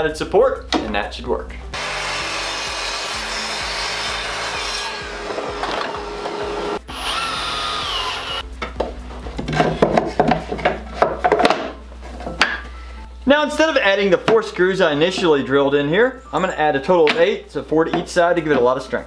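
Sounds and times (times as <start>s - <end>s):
miter saw cutting plywood: 1.8s - 8.4s
wooden knocks and clatter: 8.6s - 12.6s.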